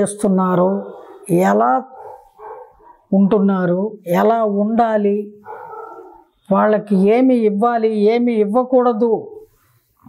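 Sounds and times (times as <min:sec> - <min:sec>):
woman speaking: 0:00.0 - 0:02.0, 0:03.1 - 0:05.4.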